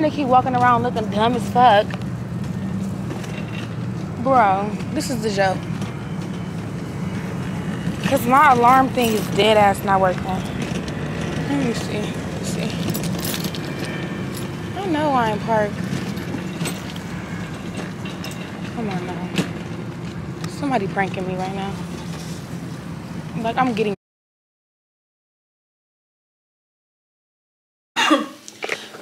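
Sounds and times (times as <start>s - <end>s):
low hum of traffic: 0.0s - 24.0s
car keys clicking and rattling: 4.8s - 14.7s, 15.6s - 20.5s.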